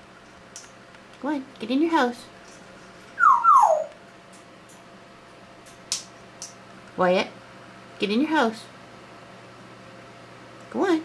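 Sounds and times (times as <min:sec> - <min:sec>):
parrot whining calls: 0:03.2 - 0:04.0.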